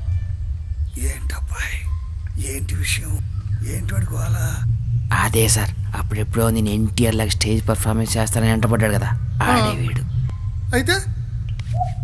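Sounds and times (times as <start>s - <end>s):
steady low hum: 0.0s - 12.0s
man asking a question: 1.0s - 10.0s.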